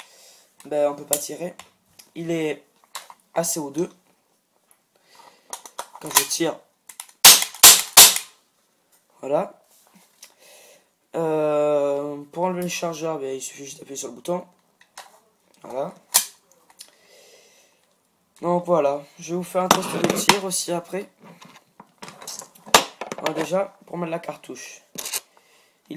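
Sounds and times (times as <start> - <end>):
faint handling noise: 19.6 - 23.7.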